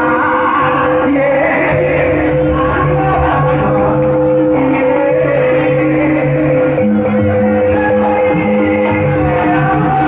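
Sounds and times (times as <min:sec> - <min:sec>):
gamelan music: 0:00.0 - 0:10.0.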